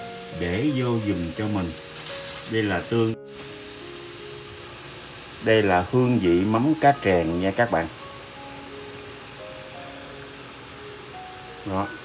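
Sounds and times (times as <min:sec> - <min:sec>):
food sizzling in a wok: 0:00.0 - 0:12.0
soft background music: 0:00.0 - 0:12.0.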